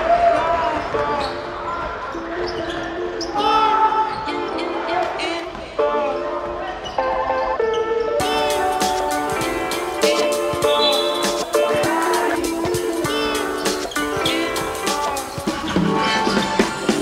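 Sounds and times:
players calling out: 0.0s - 17.0s
sneakers squeaking on floor: 0.0s - 17.0s.

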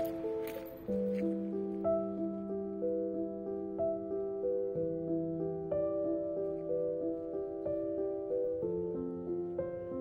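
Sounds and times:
gentle keyboard melody: 0.0s - 10.0s.

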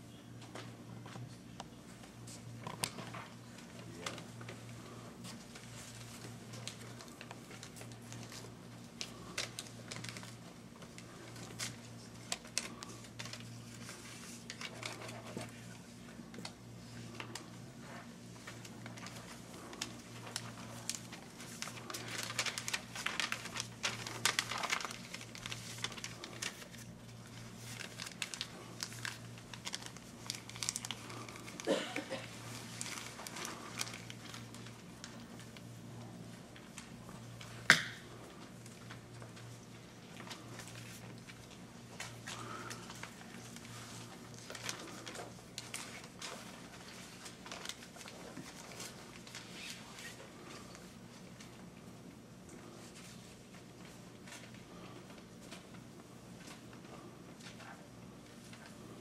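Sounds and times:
low electrical hum: 0.0s - 59.0s
paper rustling and crinkling: 0.4s - 59.0s.

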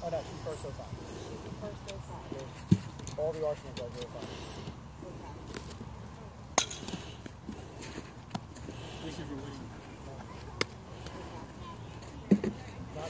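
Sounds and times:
softball striking bat or glove: 6.6s - 7.0s.

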